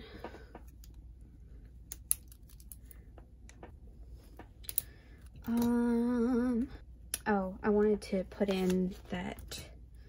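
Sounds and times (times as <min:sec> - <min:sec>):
paper rustling: 0:08.4 - 0:09.3.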